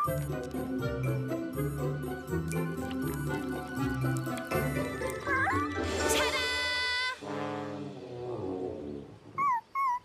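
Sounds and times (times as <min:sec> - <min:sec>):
cartoon puppy whimpering: 0:00.0 - 0:00.2, 0:05.0 - 0:07.2, 0:09.4 - 0:10.0.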